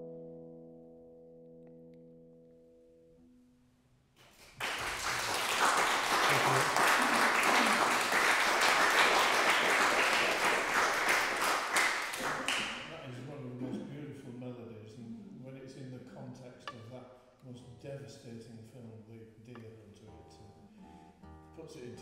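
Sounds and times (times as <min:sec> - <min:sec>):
classical guitar chord ringing: 0:00.0 - 0:03.6
audience applause: 0:04.3 - 0:12.9.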